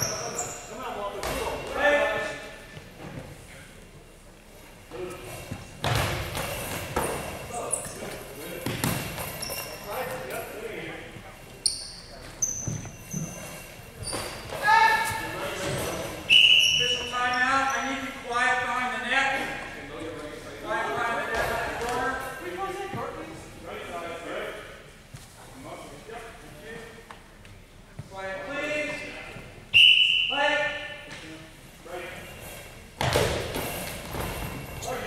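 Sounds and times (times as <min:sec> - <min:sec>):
ball hitting court floor: 0:05.5 - 0:07.3, 0:08.6 - 0:09.4, 0:33.0 - 0:34.6.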